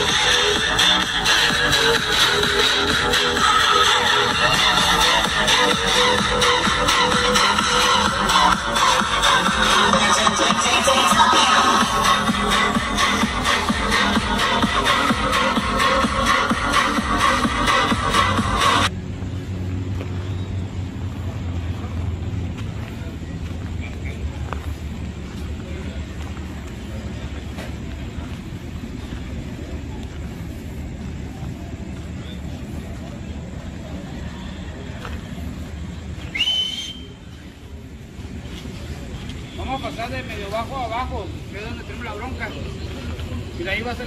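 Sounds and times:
loud music with driving beat: 0.0 - 18.9
steady low rumble: 0.0 - 36.4
faint background voices: 21.0 - 44.0
short rising whistle: 36.3 - 37.2.

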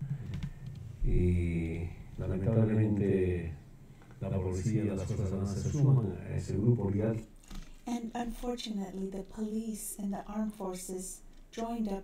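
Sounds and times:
man talking in a low voice: 1.0 - 3.6, 4.2 - 7.3.

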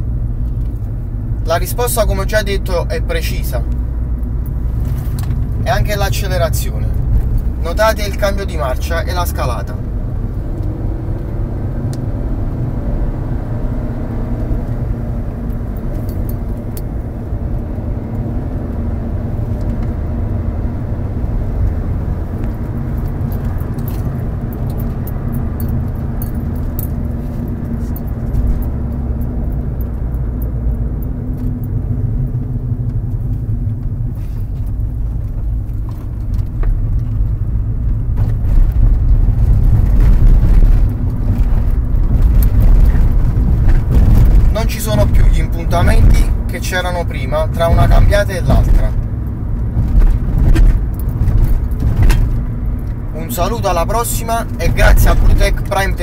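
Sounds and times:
car engine driving: 0.0 - 56.0
road noise inside car: 0.0 - 56.0.

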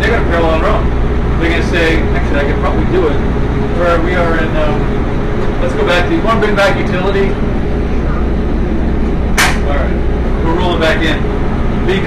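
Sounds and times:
generator rumble: 0.0 - 12.0.

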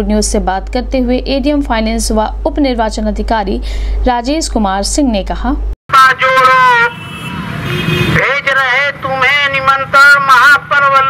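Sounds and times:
street noise: 5.9 - 11.0.

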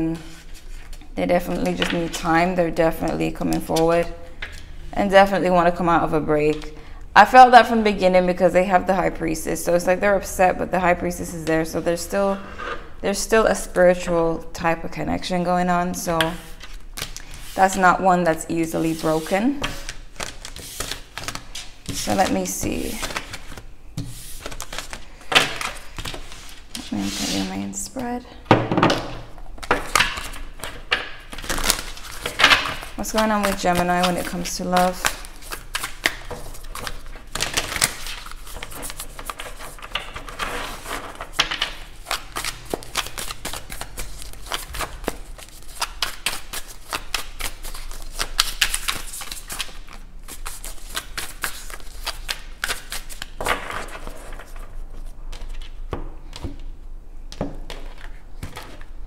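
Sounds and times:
cards being shuffled by hand: 18.8 - 27.6, 29.6 - 56.6.

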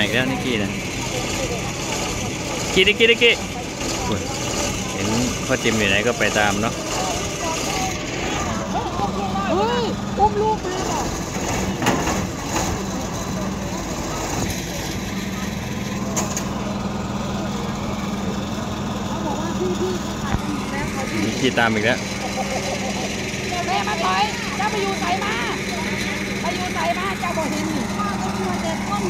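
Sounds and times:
engine humming: 0.0 - 29.0
faint voices: 0.0 - 29.0.

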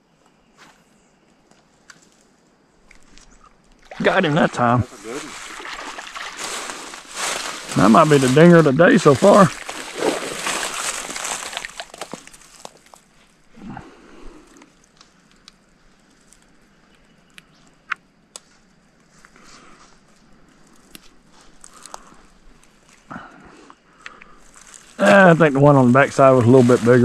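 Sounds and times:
small clicks and rustles: 1.3 - 3.8, 9.6 - 13.4, 14.4 - 23.1
fish splashing at water surface: 3.8 - 7.8, 9.2 - 12.0.

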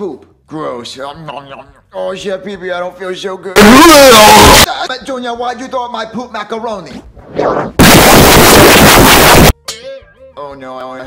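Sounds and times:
loud distorted noise blast: 7.8 - 9.6.

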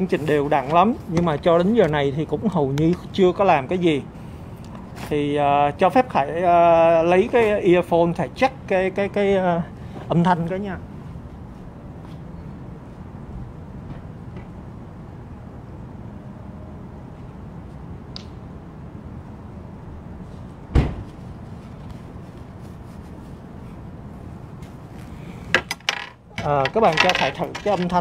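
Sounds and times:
loud sharp knock: 20.7 - 21.1.

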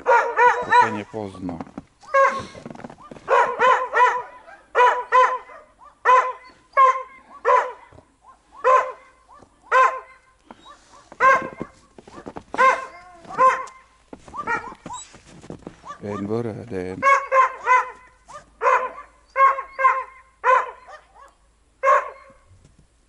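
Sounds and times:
dog barking: 0.0 - 1.1, 2.1 - 15.0, 15.8 - 16.4, 17.0 - 22.5.

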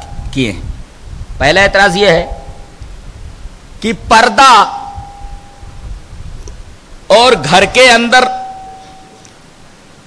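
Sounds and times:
faint steady tone: 0.0 - 0.6, 4.6 - 6.2, 6.8 - 10.0
low background hiss and rumble: 0.0 - 10.0.

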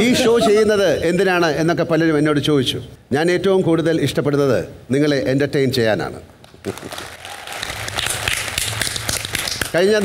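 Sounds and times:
audience applauding: 6.6 - 10.0.

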